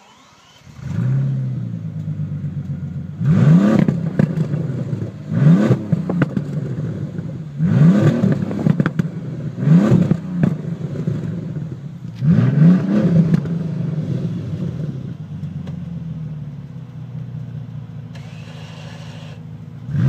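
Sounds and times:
car engine revving: 0.0s - 20.0s
exhaust pops: 1.9s - 13.6s.

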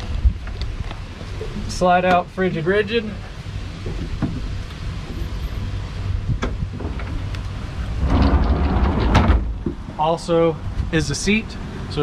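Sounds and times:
cooler seat scraping slide: 8.0s - 9.5s.

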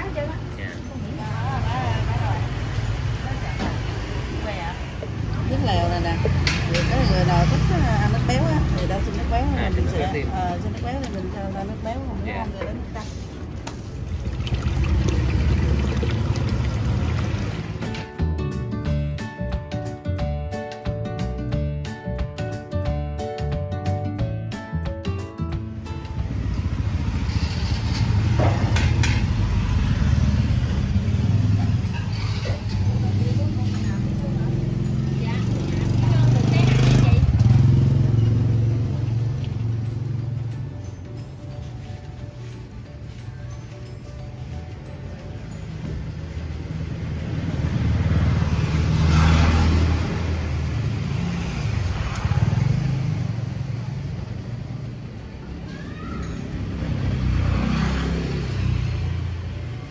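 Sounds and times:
motorbikes running: 0.0s - 19.1s, 25.6s - 59.9s
street traffic rumble: 0.0s - 59.9s.

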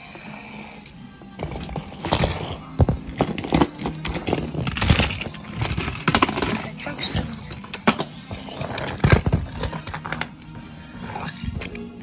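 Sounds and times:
background music: 0.0s - 12.0s
plastic toy train trucks clacking: 3.2s - 10.3s.

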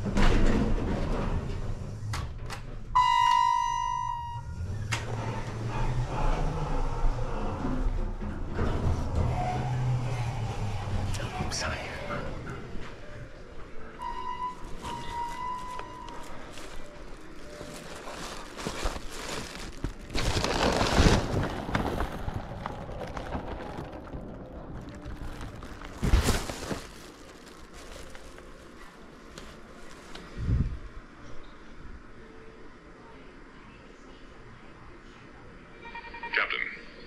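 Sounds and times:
rustling and handling noise: 12.8s - 30.8s.

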